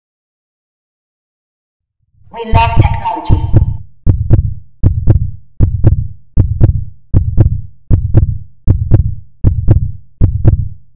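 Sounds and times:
deep electronic double thump: 2.6s - 10.9s.

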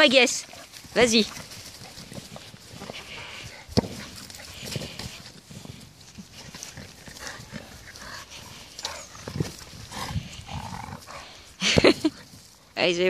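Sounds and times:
dog breathing and mouth sounds: 0.3s - 12.2s.

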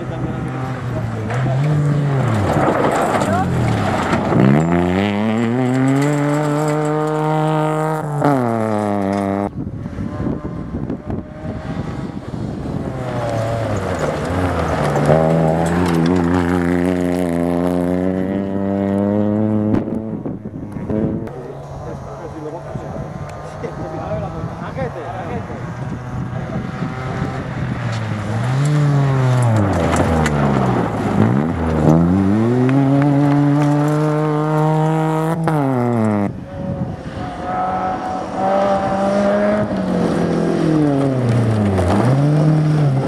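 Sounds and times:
rally car engines revving: 0.0s - 43.0s.

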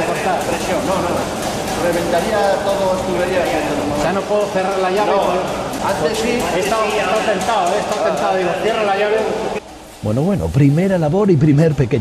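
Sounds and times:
people talking: 0.0s - 9.4s, 10.0s - 12.0s.

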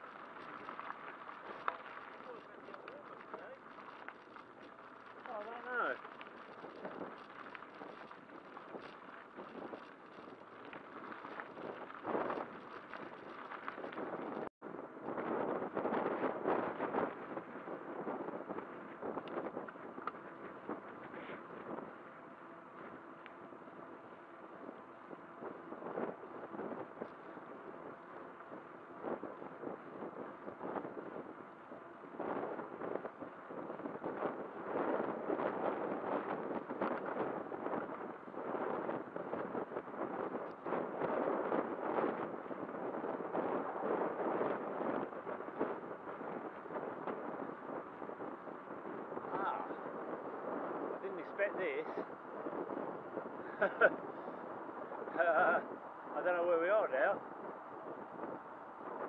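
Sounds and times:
tyres rumbling on tarmac: 0.0s - 59.0s
wind buffeting microphone: 0.0s - 59.0s
person laughing: 53.5s - 54.0s.

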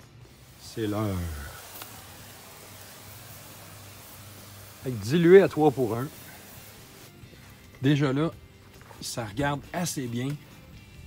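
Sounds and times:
sprayer hiss: 0.0s - 7.8s.

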